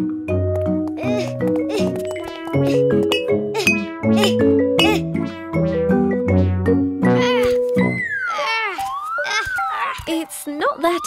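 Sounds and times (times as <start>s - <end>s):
playful cartoon music: 0.0s - 10.3s.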